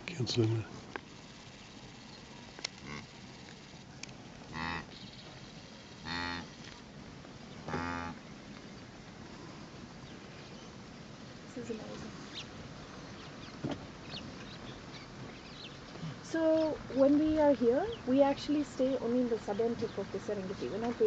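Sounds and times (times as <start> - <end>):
wildebeest calling: 2.8 - 3.2, 4.5 - 5.1, 6.0 - 6.6, 7.6 - 8.2.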